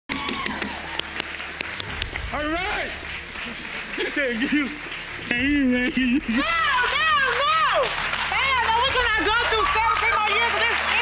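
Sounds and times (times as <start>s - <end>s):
audience applauding: 0.1s - 11.0s.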